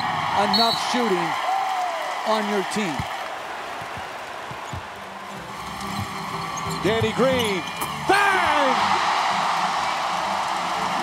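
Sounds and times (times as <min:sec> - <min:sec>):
basketball dribbled on hardwood: 0:03.8 - 0:05.0.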